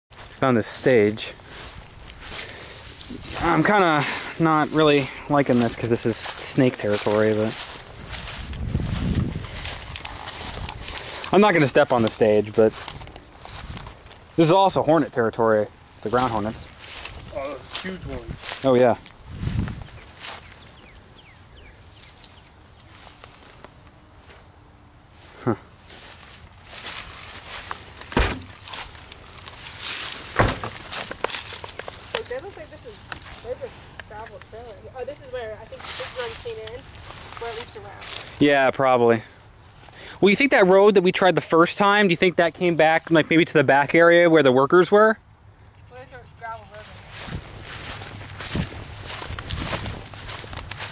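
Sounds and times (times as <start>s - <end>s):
footsteps through dry grass: 0.1s - 38.5s, 39.1s - 40.0s, 46.0s - 50.9s.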